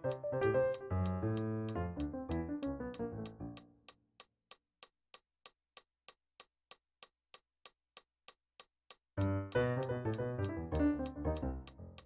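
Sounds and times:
digital piano notes: 0.0 - 3.6, 9.2 - 12.0
metronome clicking: 0.0 - 4.3, 8.6 - 12.0.

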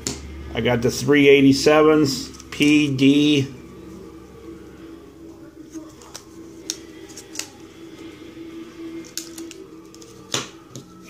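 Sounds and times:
steady faint hum: 0.0 - 11.0.

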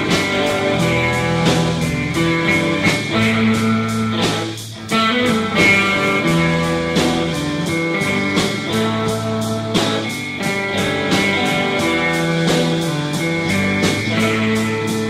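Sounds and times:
bass guitar: 0.0 - 15.0
distorted electric guitars: 0.0 - 15.0
steady drum beat: 0.0 - 15.0.

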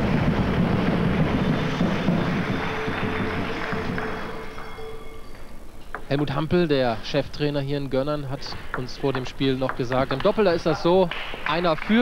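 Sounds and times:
crowd cheering: 0.0 - 5.5.

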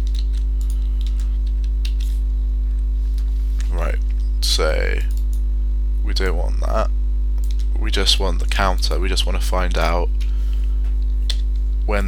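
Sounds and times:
low electrical hum: 0.0 - 12.0
keyboard and mouse clicks: 7.4 - 7.7.

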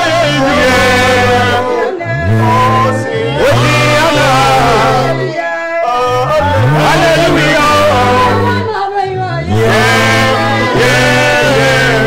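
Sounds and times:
keyboard notes: 0.0 - 5.4, 6.1 - 8.8, 9.4 - 12.0
bass notes: 0.0 - 12.0
gospel singing voice: 0.0 - 12.0.

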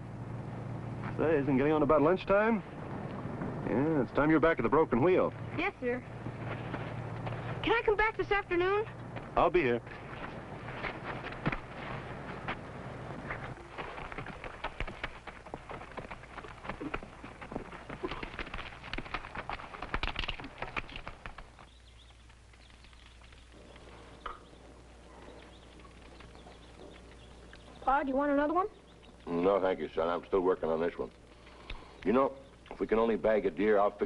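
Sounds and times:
horse hoofbeats on dirt: 3.1 - 29.2.

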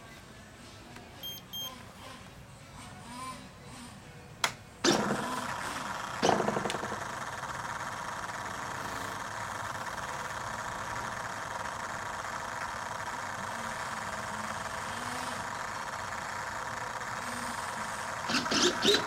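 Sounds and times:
sharp click: 4.4 - 5.0
small model engine running: 4.8 - 19.0.

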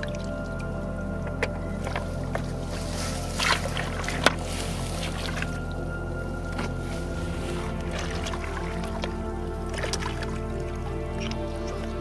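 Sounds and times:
background music: 0.0 - 12.0
water splashing: 0.0 - 12.0.

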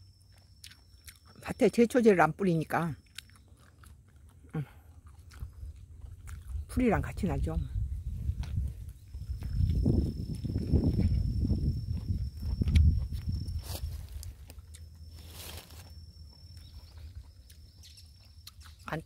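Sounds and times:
footsteps through dry leaves: 13.6 - 14.5, 15.1 - 15.9.

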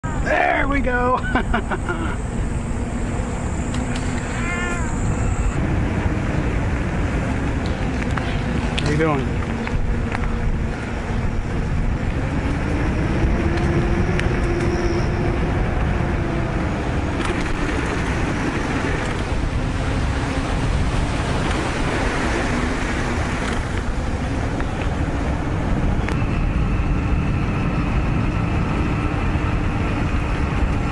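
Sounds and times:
faint whine: 0.0 - 30.9
wind on microphone: 0.0 - 30.9
bicycle tyre noise: 1.4 - 30.9.

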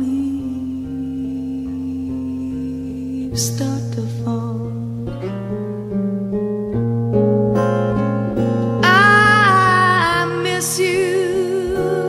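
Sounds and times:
woman singing: 0.0 - 5.4, 8.8 - 12.0
slow acoustic guitar: 0.0 - 12.0.

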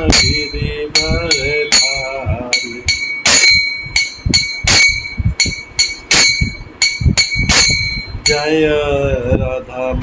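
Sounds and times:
brass hand cymbals clashing: 0.1 - 8.5.

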